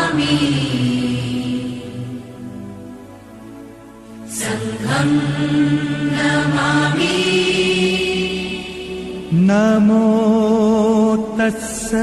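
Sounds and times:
chanting with held notes: 0:00.0 - 0:02.9, 0:04.2 - 0:11.4.

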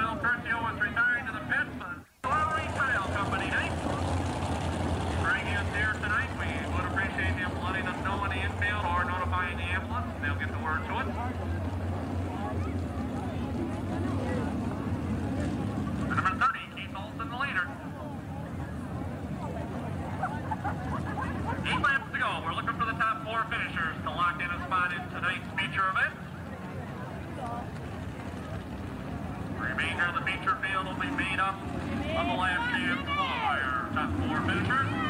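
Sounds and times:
race car engines running: 0:00.0 - 0:35.0.

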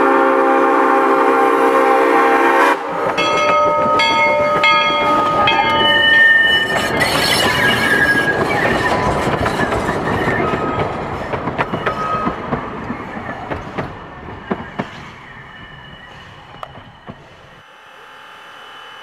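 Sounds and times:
steam locomotive whistle: 0:00.0 - 0:09.6
train wheels clicking on rail joints: 0:02.8 - 0:17.6
thin ringing wheel squeals: 0:03.3 - 0:10.8.

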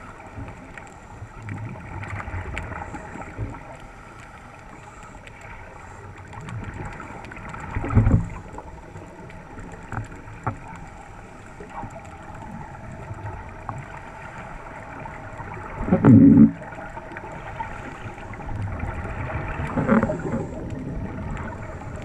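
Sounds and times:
regulator bubbles gurgling: 0:00.0 - 0:22.0
faint clicks: 0:00.3 - 0:22.0
low underwater rumble: 0:06.3 - 0:22.0.

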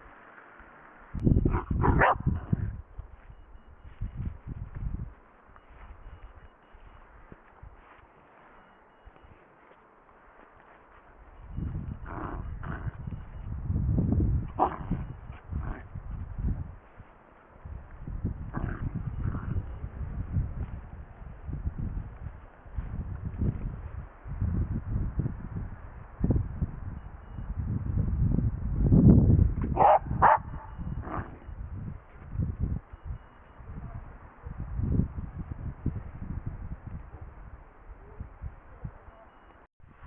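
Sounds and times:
rustling and movement noise: 0:00.0 - 0:24.8
dog yelps: 0:01.5 - 0:02.3, 0:29.8 - 0:30.7
dog low rumbling: 0:11.6 - 0:13.3, 0:14.5 - 0:16.0, 0:18.4 - 0:19.9.

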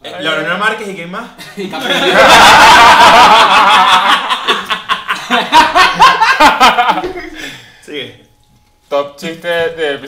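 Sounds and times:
men laughing hard: 0:01.5 - 0:07.5.

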